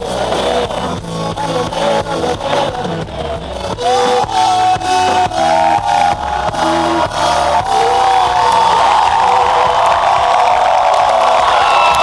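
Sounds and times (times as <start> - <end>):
live band playing: 0.0 - 12.0
crowd cheering and whooping: 3.8 - 12.0.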